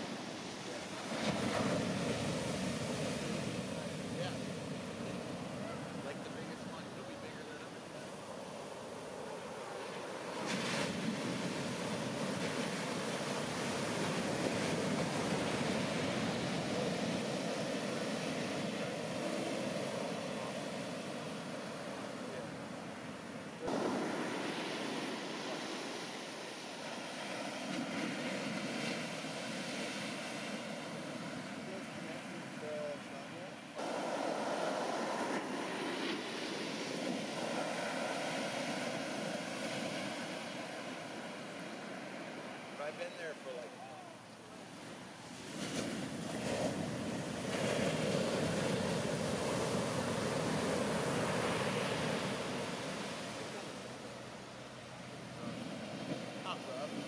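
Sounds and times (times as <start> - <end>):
waves breaking on shore: 0.0 - 57.0
whitewater washing up sand: 0.0 - 57.0.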